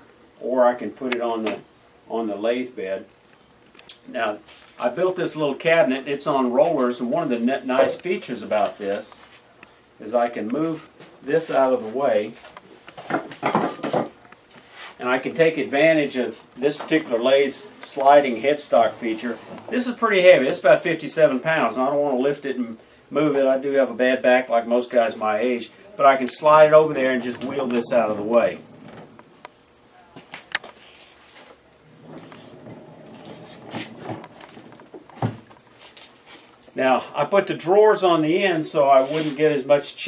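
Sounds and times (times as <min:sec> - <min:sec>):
tools rattling and knocking: 0:13.0 - 0:14.2
cabinet rolling on casters: 0:18.4 - 0:20.3, 0:26.9 - 0:29.2, 0:31.8 - 0:35.4.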